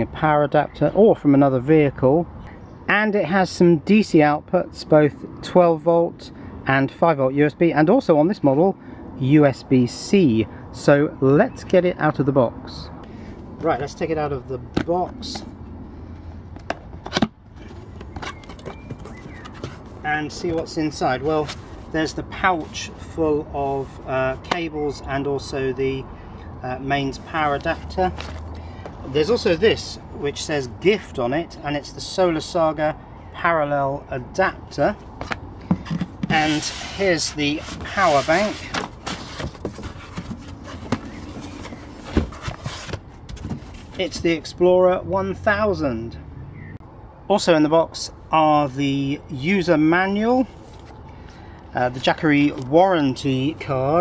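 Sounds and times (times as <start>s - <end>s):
scraping and rustling of box flaps: 16.9s - 22.9s, 35.2s - 44.3s.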